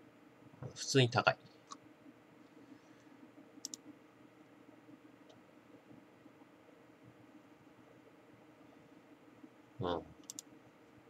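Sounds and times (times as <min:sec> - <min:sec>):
light clicks: 0:03.6 - 0:03.8, 0:10.2 - 0:10.5.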